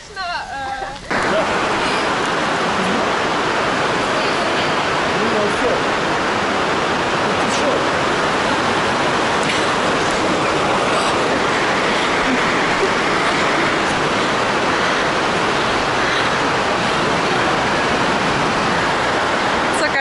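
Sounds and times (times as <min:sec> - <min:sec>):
heavy rain on a roof: 0:00.0 - 0:20.0.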